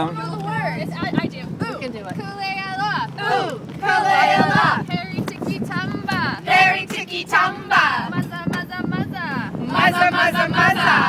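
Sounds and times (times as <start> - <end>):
girls and women singing: 2.8 - 11.0.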